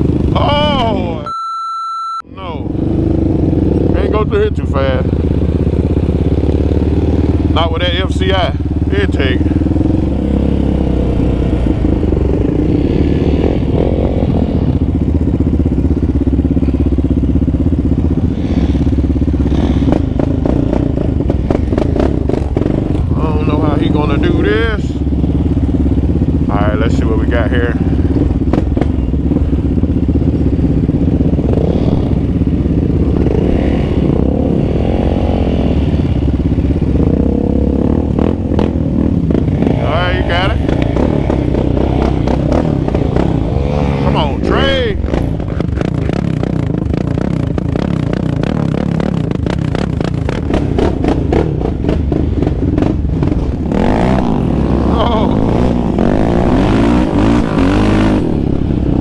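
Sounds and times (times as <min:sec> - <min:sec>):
quad bike engine revving: 0:00.0 - 0:01.2, 0:02.4 - 0:59.0.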